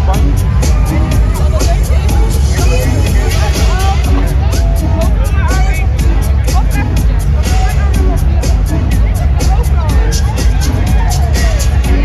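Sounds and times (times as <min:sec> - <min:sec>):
crowd shouting and chattering: 0:00.0 - 0:12.0
loud dance music over pa: 0:00.0 - 0:12.0.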